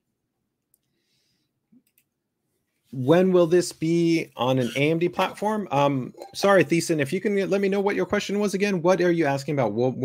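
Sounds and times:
computer mouse clicks: 1.7 - 2.2
man speaking: 2.9 - 10.0.

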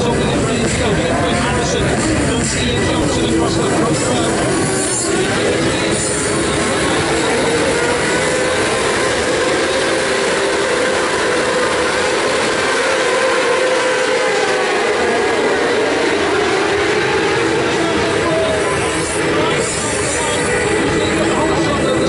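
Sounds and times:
racing motorcycles revving: 0.0 - 22.0.

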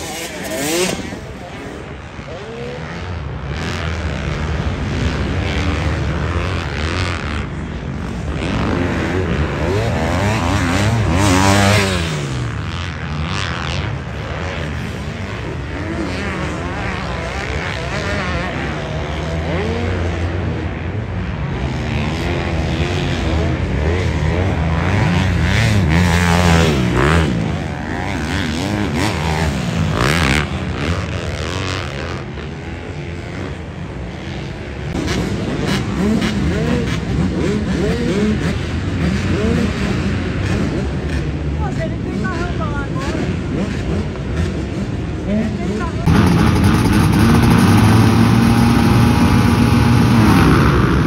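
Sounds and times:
dirt bike engines revving: 0.0 - 51.0.

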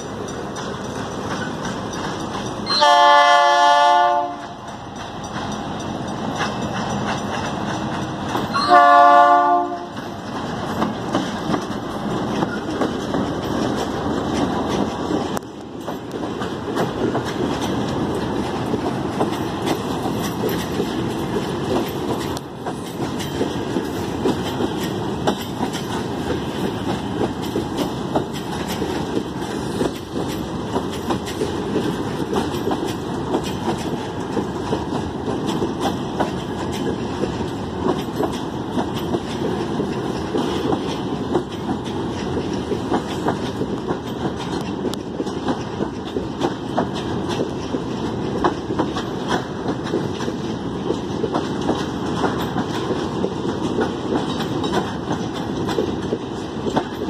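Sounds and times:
train rumbling past: 0.0 - 57.0
wheels clacking over rail joints: 0.0 - 57.0
locomotive horn: 2.7 - 4.6, 8.5 - 10.0.

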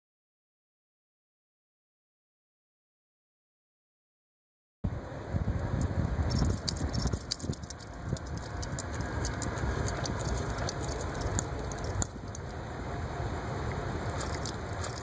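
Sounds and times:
handling noise rumble: 5.4 - 15.0
leash clip jingling and clicking: 5.8 - 12.6, 14.1 - 15.0.

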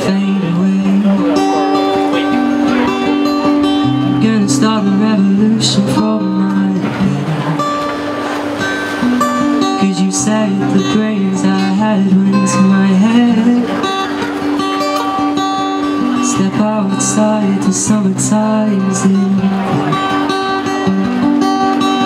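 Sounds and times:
man singing: 0.0 - 8.0, 9.4 - 14.1, 15.3 - 22.0
acoustic guitar strumming: 0.0 - 22.0.

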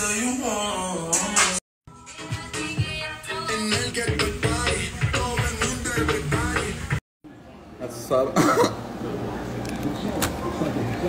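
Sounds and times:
man coughing: 8.2 - 8.9.

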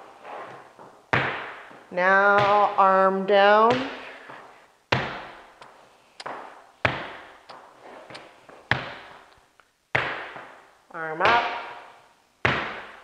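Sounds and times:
dance shoes striking hardwood floor: 0.8 - 2.8, 4.9 - 9.2, 12.4 - 13.0.

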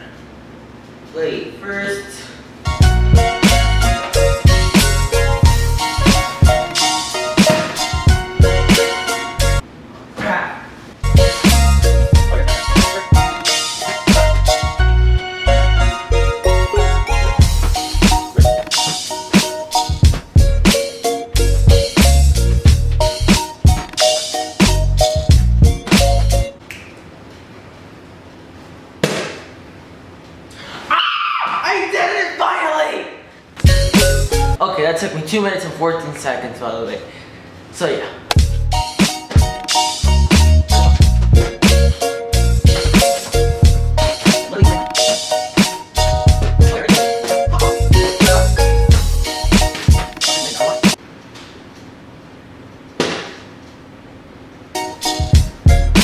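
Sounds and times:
music with heavy bass beat: 2.7 - 9.6, 11.0 - 15.2, 15.8 - 26.5, 33.6 - 34.6, 38.4 - 51.0, 55.0 - 56.0
plastic bottle landing on floor: 7.5 - 7.8, 29.0 - 29.5, 53.0 - 53.5.

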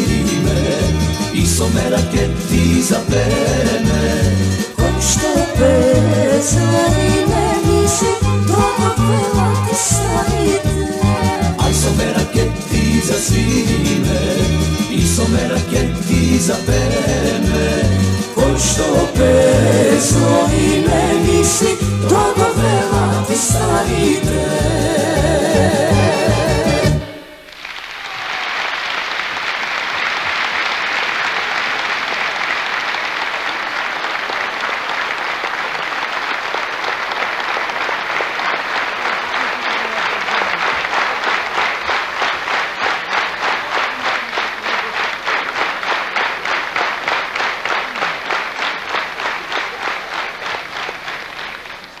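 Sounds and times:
rhythmic clapping in unison: 0.0 - 52.0
audience applauding: 27.0 - 52.0.

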